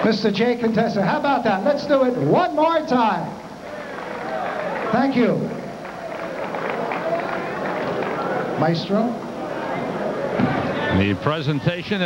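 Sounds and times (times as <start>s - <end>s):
crowd chatter: 3.4s - 12.0s
scattered applause: 3.5s - 11.4s.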